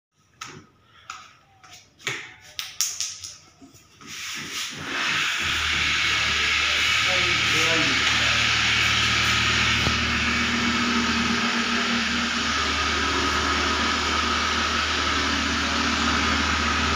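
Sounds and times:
low hum: 5.2 - 16.9.

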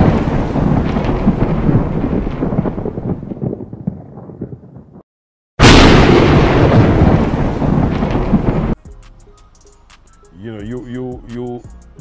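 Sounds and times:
rumbling crackling boom: 0.0 - 5.0, 5.6 - 8.8.

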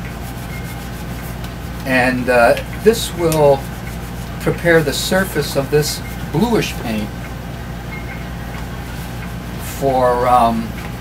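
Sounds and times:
hands rubbing a surface: 0.0 - 1.9, 2.9 - 4.9
steady low hum: 0.0 - 11.0.

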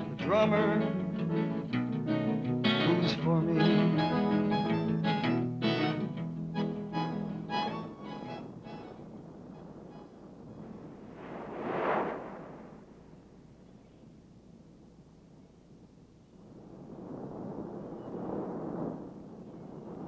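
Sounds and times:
folk ballad with acoustic guitar: 0.0 - 8.7
surf wave surging: 7.7 - 13.3.

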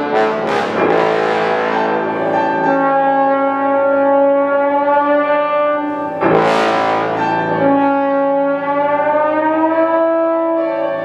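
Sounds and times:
bass trombone long notes: 0.0 - 11.0
bright piano chord: 0.0 - 11.0.

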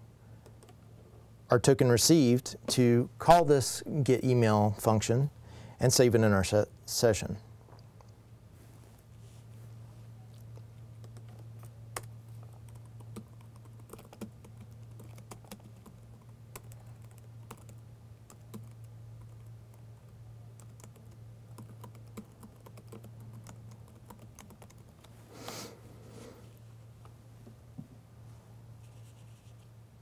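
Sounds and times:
low electrical hum: 0.0 - 30.0.

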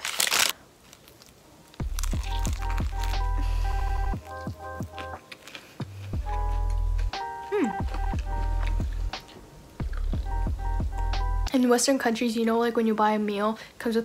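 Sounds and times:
music with deep bass and synth: 1.8 - 5.2, 6.0 - 9.2, 9.8 - 11.5
crunchy bite into burger: 1.8 - 9.2.

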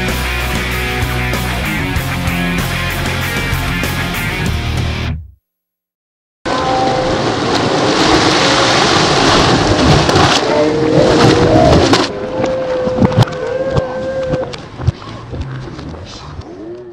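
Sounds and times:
water splashing: 6.5 - 16.2.

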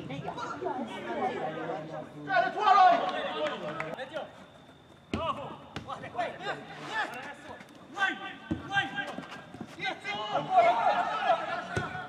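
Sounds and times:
voices calling out: 0.2 - 12.0
loud drawn-out shout: 10.1 - 12.0.

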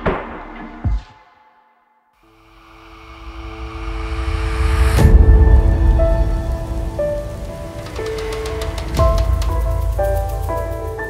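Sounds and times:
noise swell into sharp hit: 2.4 - 8.0
deep rumble: 2.7 - 11.0.

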